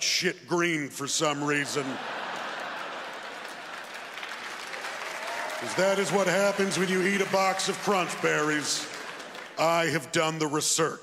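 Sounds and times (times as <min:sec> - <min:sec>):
audience applauding: 0:02.0 - 0:10.0.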